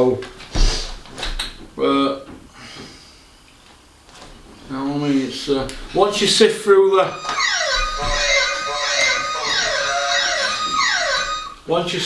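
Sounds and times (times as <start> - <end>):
electronic falling glides: 6.9 - 11.6.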